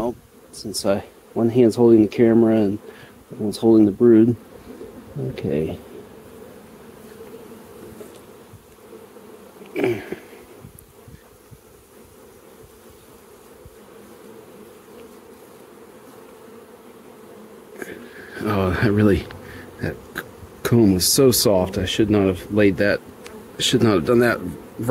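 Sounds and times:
bees humming: 0:00.0 - 0:24.9.

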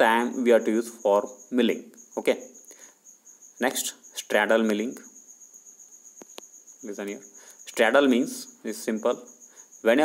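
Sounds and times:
insect trilling: 0:00.0 - 0:10.0.

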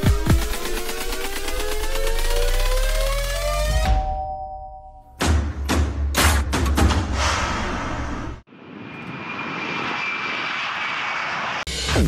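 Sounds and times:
music beat: 0:00.0 - 0:04.0
rushing noise with high whine: 0:08.5 - 0:12.0.

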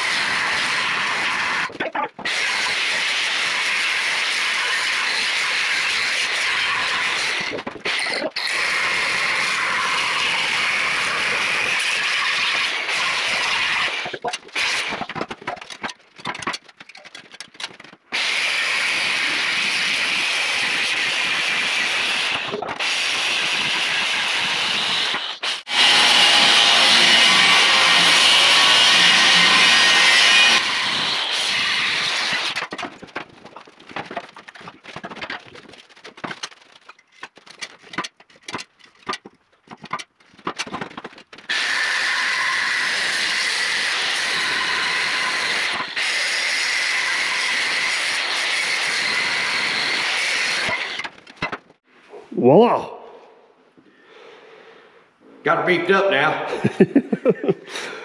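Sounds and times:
angle grinder cutting steel tubing: 0:00.0 - 0:16.6, 0:17.8 - 0:32.9, 0:41.5 - 0:51.2.

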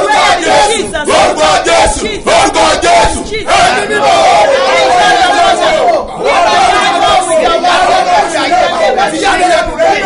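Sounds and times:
man and woman shouting prayer: 0:03.2 - 0:10.0.

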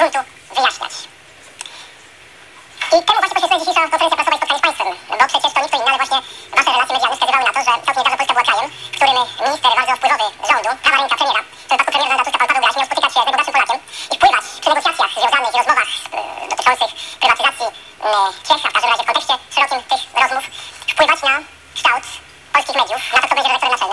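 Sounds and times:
person talking over telephone: 0:00.0 - 0:01.1, 0:02.8 - 0:23.9.

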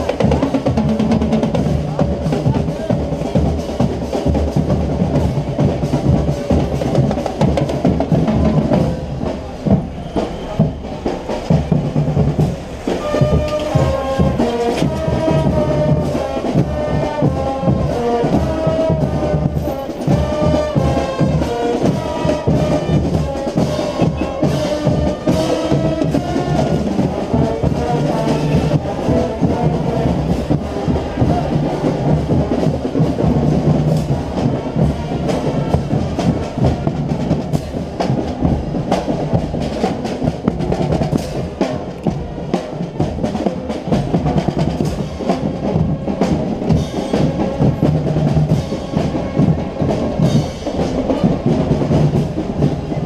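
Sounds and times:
bass drums: 0:00.0 - 0:53.0
snare drums: 0:00.0 - 0:53.0
trombones and brass: 0:00.0 - 0:53.0.

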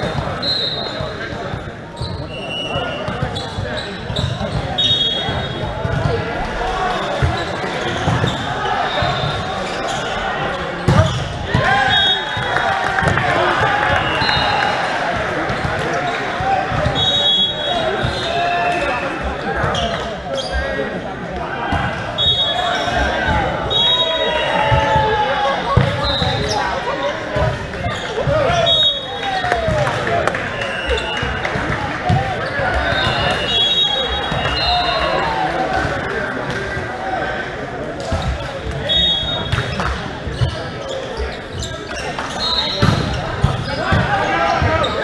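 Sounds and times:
sneakers squeaking on floor: 0:00.0 - 0:12.6, 0:15.4 - 0:21.0, 0:21.7 - 0:36.2, 0:38.0 - 0:45.0.

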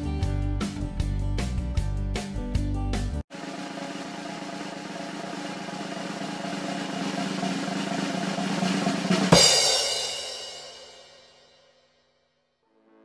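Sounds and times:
snare drum roll: 0:03.3 - 0:10.9
cymbal crash ringing: 0:03.4 - 0:11.8.

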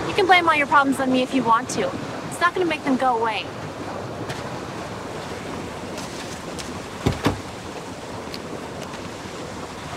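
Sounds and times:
ocean surf breaking on beach: 0:00.0 - 0:09.9.

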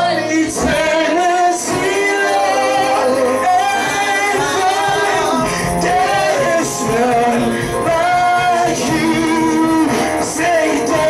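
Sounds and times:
instrumental accompaniment: 0:00.0 - 0:11.0
man singing worship song: 0:00.0 - 0:11.0.

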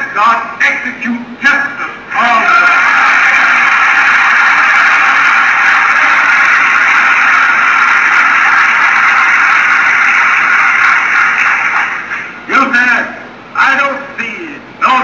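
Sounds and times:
audience applause: 0:02.3 - 0:12.4.

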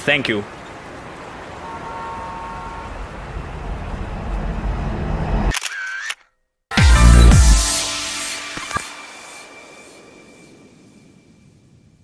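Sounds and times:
short tone: 0:01.6 - 0:03.0.

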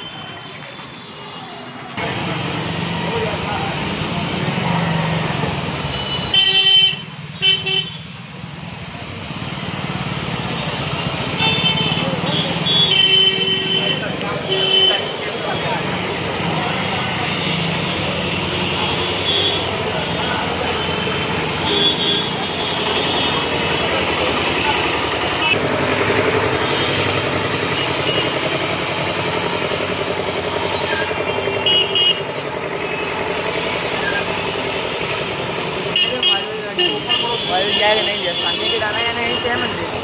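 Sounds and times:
passers-by's voices: 0:00.0 - 0:06.0, 0:08.4 - 0:27.9, 0:32.2 - 0:40.0
motor traffic: 0:00.0 - 0:40.0
vehicle horn toots: 0:05.9 - 0:08.0, 0:11.3 - 0:15.6, 0:18.5 - 0:24.1, 0:30.7 - 0:32.3, 0:35.9 - 0:38.9.

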